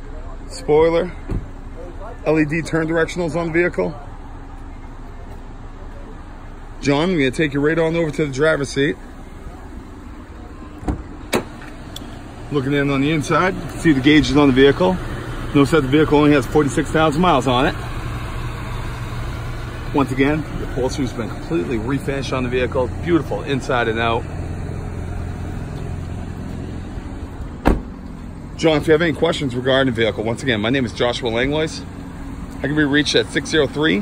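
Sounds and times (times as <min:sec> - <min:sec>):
car engine idling: 0:00.0 - 0:34.0
car door opening knock: 0:27.6 - 0:28.0.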